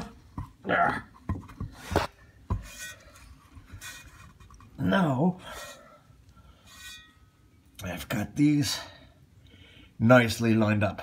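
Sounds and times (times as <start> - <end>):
metallic scrapes and knocks: 1.2 - 4.7, 6.6 - 7.3.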